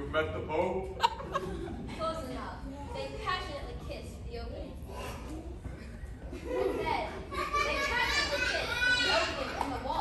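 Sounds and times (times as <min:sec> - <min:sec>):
young voices: 0:01.4 - 0:10.0.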